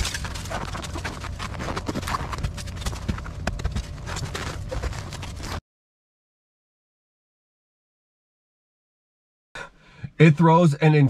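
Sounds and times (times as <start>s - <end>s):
snow crunching and scraping: 0.0s - 5.6s.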